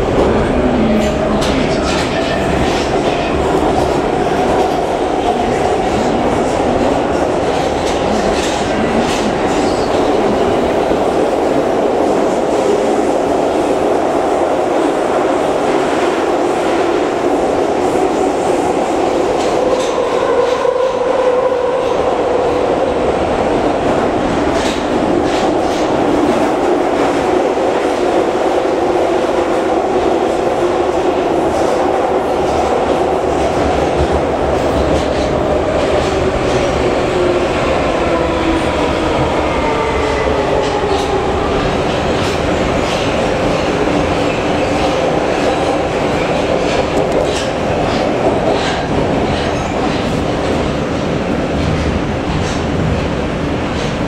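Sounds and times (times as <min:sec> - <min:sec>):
metro car wheels rumbling: 0:00.0 - 0:54.0.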